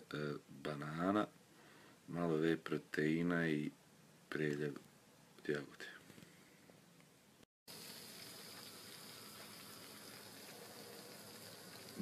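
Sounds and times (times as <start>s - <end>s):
meat and vegetables sizzling in a pan: 7.7s - 12.0s.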